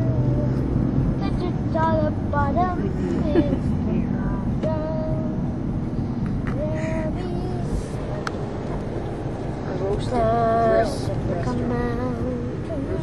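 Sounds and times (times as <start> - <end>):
road and engine rumble in car: 0.0 - 13.0.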